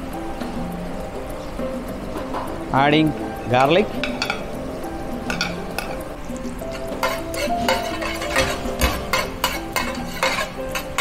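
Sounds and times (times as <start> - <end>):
garlic sizzling in butter: 3.4 - 11.0
metal spoon scraping pan: 6.6 - 11.0.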